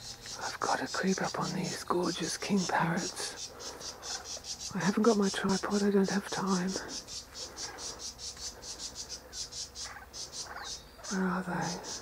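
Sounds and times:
insect chirping: 0.0 - 12.0.

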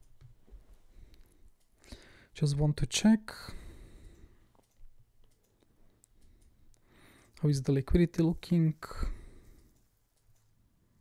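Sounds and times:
computer mouse clicks: 4.1 - 7.4, 9.5 - 10.6.

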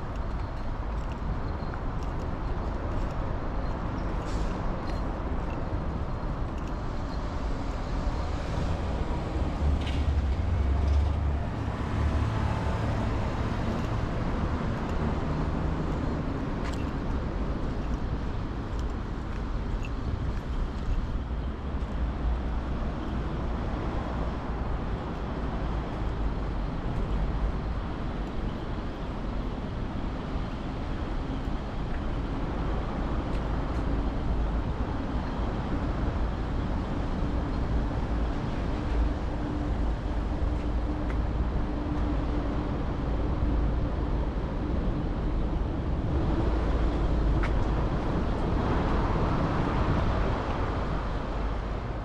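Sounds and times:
city road traffic rumble: 0.0 - 52.0.

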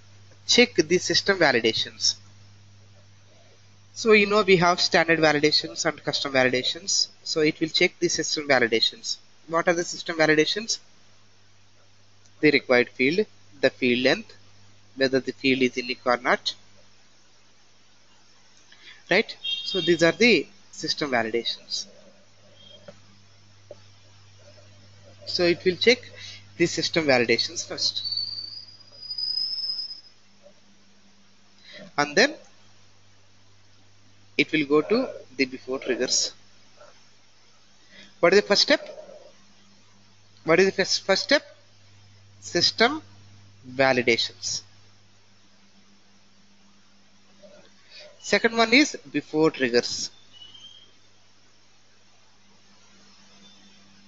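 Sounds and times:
faint low hum: 0.0 - 54.0
soft hiss: 0.0 - 54.0
high-pitched whine: 19.1 - 30.8, 34.3 - 36.9, 52.6 - 54.0.

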